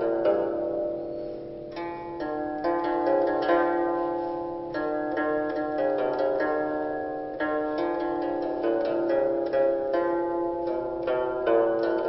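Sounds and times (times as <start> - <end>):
plucked zither melody: 0.0 - 12.0.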